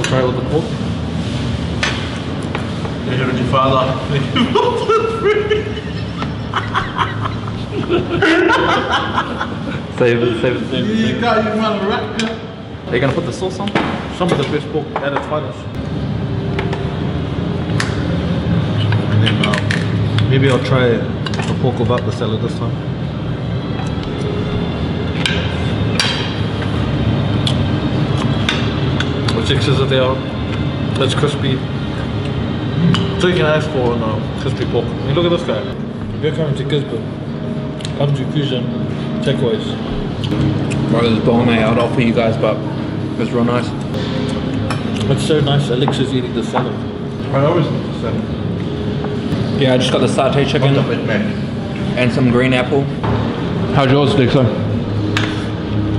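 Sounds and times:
restaurant dining room noise: 0.0 - 55.9.

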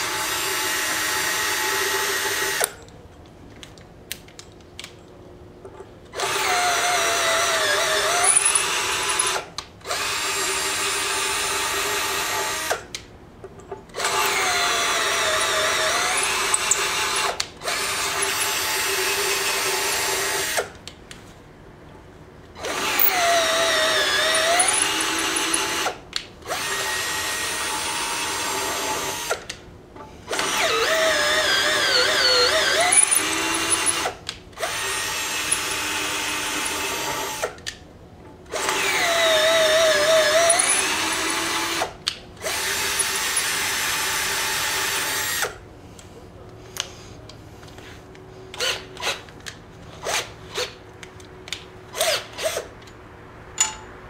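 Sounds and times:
cordless drill boring into metal: 6.2 - 12.8, 14.0 - 20.7, 22.6 - 29.5, 30.3 - 37.6, 38.5 - 45.6.

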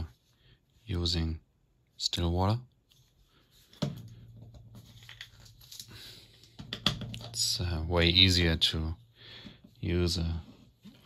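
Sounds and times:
handling rustling and scraping: 2.8 - 7.6, 8.3 - 11.0.

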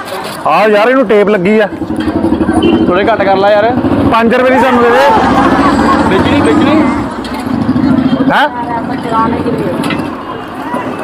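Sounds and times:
street noise: 0.0 - 11.0
vehicle engine running: 1.3 - 10.3.

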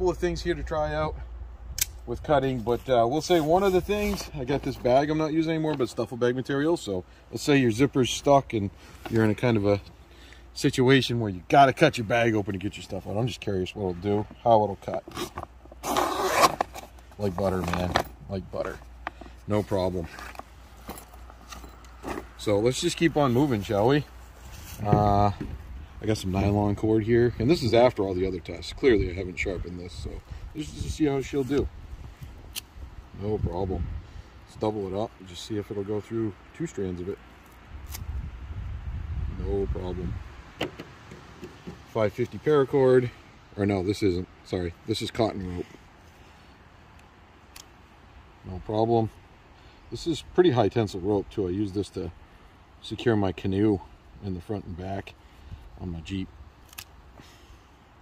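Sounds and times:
bag rustling: 14.8 - 25.0.

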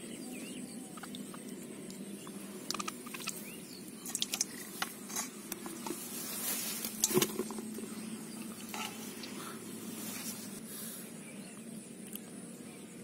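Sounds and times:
mud and water squelches: 0.8 - 10.6.

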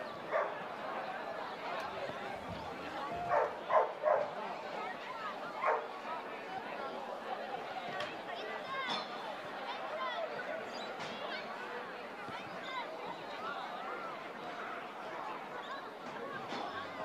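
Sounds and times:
spectators chatting: 0.0 - 17.0
dog barking: 0.3 - 0.6, 3.3 - 4.3, 5.6 - 5.9.

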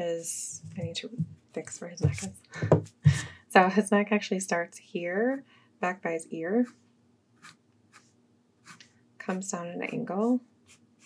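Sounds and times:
pencil scratching on paper: 6.5 - 11.0.

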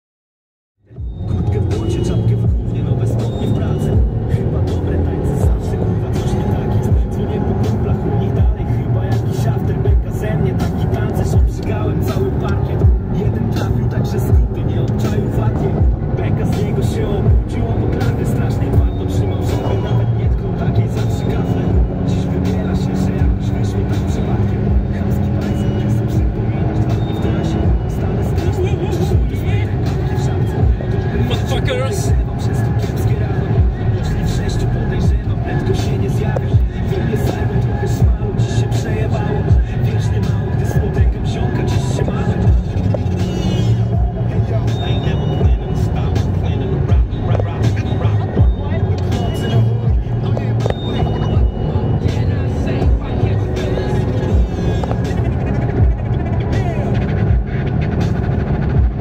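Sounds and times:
car engine running while driving: 0.8 - 59.0
music playing: 0.8 - 59.0.

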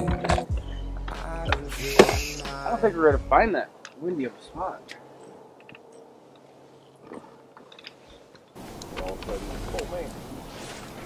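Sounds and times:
rush of outdoor noise: 0.0 - 11.0.

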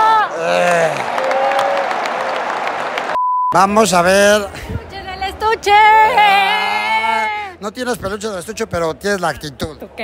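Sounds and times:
crowd clapping: 0.5 - 3.2.

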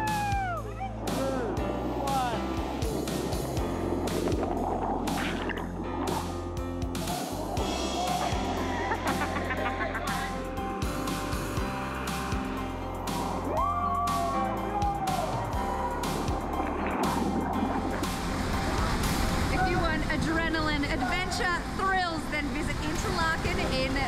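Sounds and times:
background music: 0.0 - 24.0
people laughing: 7.8 - 10.4.

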